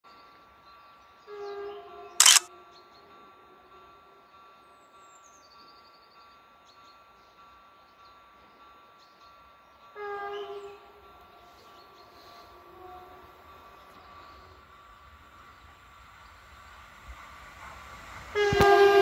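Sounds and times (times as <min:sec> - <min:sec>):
distant train horn: 0:01.2 - 0:02.2, 0:09.9 - 0:14.6, 0:18.3 - 0:19.0
loud sharp click: 0:02.2 - 0:02.5.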